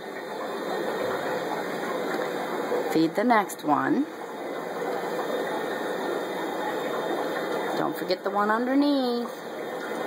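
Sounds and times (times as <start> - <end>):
air pumps and filters humming: 0.0 - 10.0
faint constant tone: 0.0 - 10.0.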